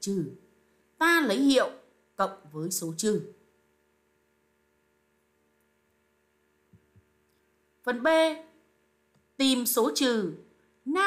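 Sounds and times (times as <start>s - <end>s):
woman speaking: 0.0s - 3.5s, 7.8s - 8.6s, 9.4s - 11.0s
faint electrical hum: 0.0s - 11.0s.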